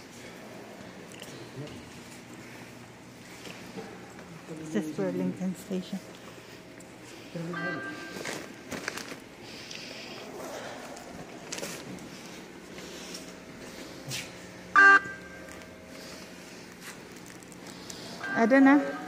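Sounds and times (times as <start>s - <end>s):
low hum of station lobby: 0.0s - 19.0s
footsteps: 10.8s - 17.8s.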